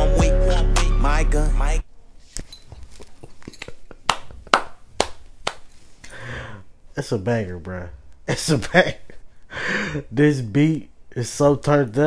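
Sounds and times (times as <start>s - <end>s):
hands clapping: 3.6s - 5.8s.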